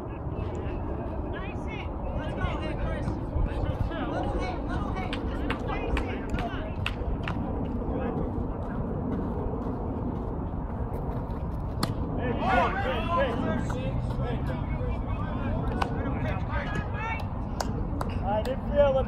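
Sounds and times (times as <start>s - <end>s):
steady low rumble: 0.0s - 19.0s
people shouting: 12.2s - 13.6s.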